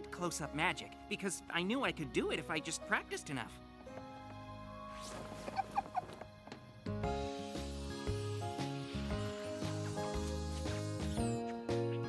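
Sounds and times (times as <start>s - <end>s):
soft background music: 0.0s - 12.0s
cartoon rising squeaks: 5.4s - 6.1s.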